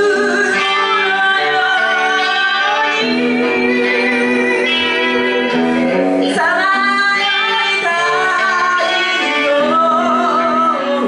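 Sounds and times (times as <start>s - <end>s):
electric guitar and bass: 0.0s - 11.0s.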